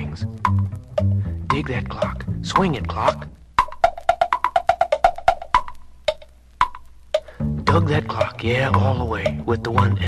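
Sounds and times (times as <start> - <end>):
clock-like percussion ticks: 0.0 - 10.0
swing song: 0.0 - 10.0.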